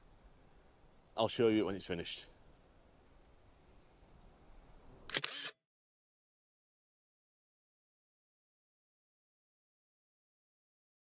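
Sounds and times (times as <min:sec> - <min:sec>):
camera shutter click: 0:05.1 - 0:05.6.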